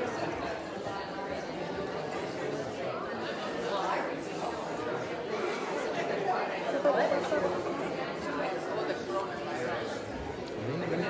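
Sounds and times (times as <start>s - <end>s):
crowd chatting: 0.0s - 11.0s.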